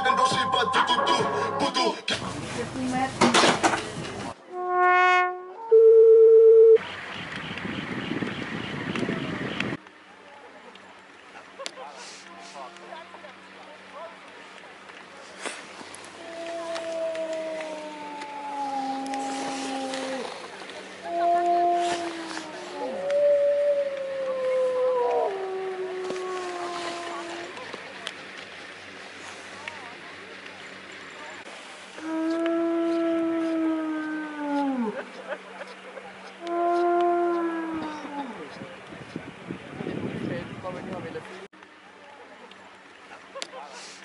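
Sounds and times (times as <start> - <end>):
sustained brass-like notes: 4.5 - 6.2
steady pure tone: 4.5 - 6.8
dog howling: 16.2 - 20.3, 21.1 - 27.6.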